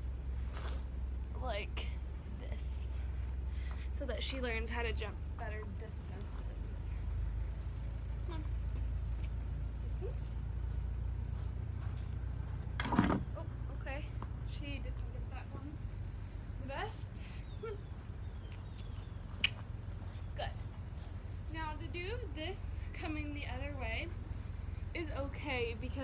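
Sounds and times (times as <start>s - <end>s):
steady low rumble: 0.0s - 26.0s.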